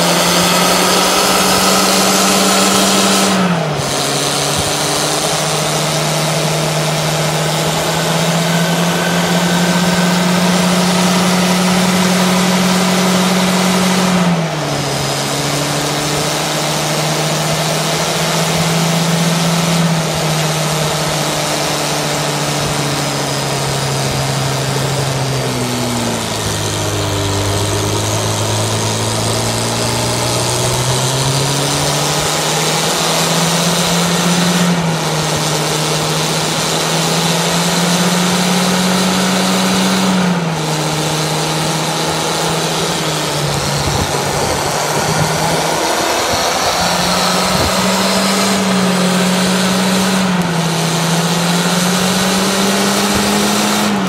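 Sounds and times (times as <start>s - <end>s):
car engine revving high: 0.0s - 54.0s
tyres spinning: 0.0s - 54.0s.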